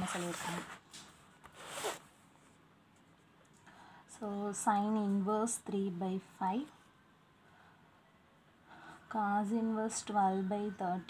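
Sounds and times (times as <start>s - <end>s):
paper sheets rustling: 0.0s - 2.0s.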